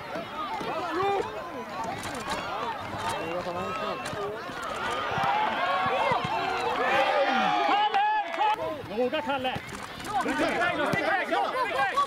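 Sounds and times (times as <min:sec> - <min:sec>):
crowd shouting and calling: 0:00.0 - 0:12.0.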